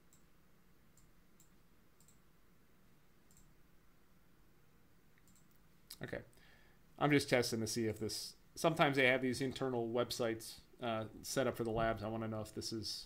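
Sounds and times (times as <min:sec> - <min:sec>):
computer mouse clicks: 0:00.1 - 0:00.3, 0:01.0 - 0:02.2, 0:03.3 - 0:03.5, 0:05.2 - 0:05.6.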